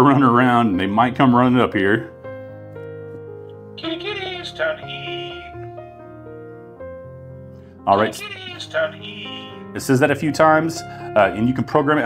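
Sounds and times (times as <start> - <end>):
soft piano music: 0.0 - 12.0
recorded voice message: 3.8 - 5.6, 7.9 - 10.1.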